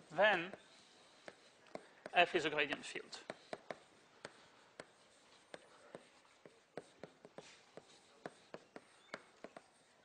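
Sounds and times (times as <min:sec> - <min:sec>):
chalk tapping on a blackboard: 0:00.0 - 0:10.0.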